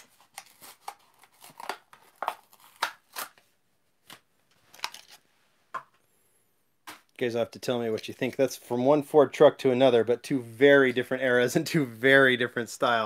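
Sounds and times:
plastic packaging being torn open: 0.0s - 3.4s, 4.1s - 5.2s.

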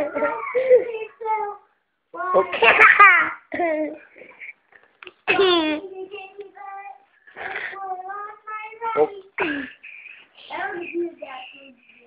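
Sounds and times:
young child singing: 5.8s - 7.1s, 7.7s - 9.4s.

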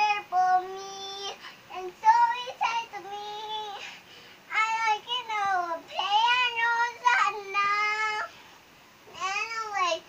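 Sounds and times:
girl singing: 0.0s - 8.4s, 9.1s - 10.0s.

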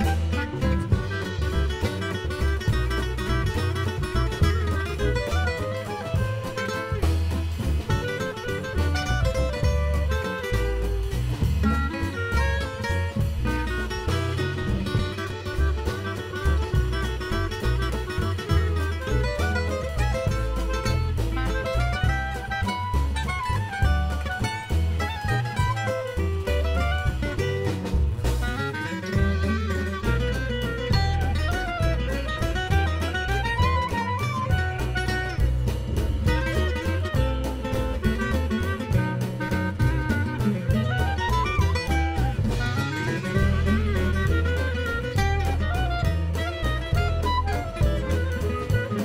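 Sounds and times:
jazz band playing instrumental: 0.0s - 49.0s.

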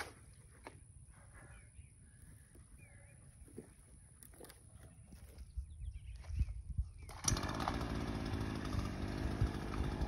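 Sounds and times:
chainsaw starter cord pulls: 7.1s - 10.0s.

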